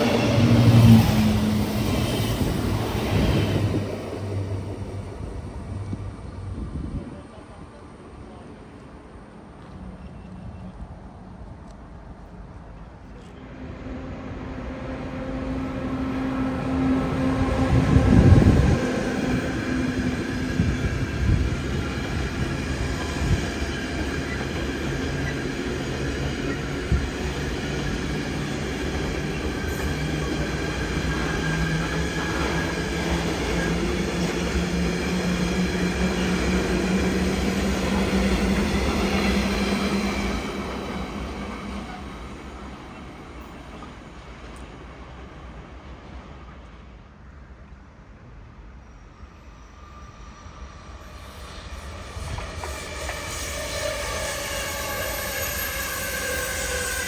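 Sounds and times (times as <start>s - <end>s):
electric locomotive passing: 0.0s - 57.0s
train wheels rolling: 50.4s - 57.0s.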